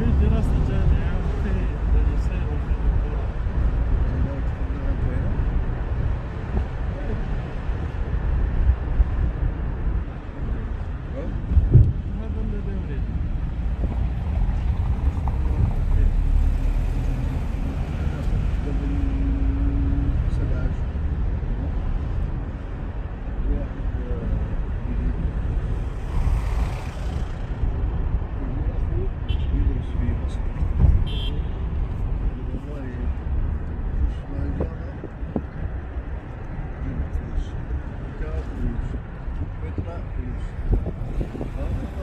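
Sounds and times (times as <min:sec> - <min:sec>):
car driving rumble: 0:00.0 - 0:42.0.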